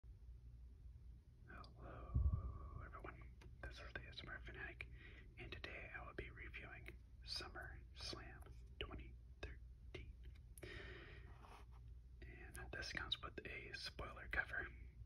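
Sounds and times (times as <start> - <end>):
person whispering: 1.5 - 14.9
low thump: 2.1 - 2.5.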